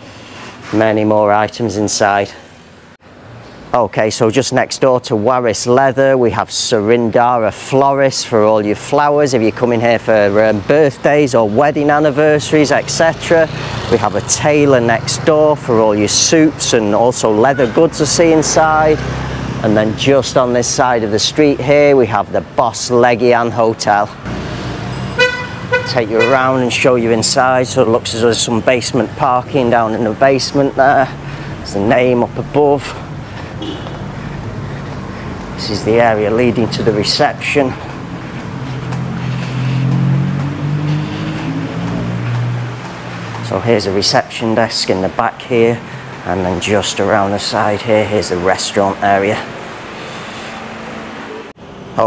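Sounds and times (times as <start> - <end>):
street traffic noise: 0.0 - 52.0
steady rushing noise: 23.8 - 52.0
vehicle horn tooting: 24.9 - 26.6, 33.6 - 34.1.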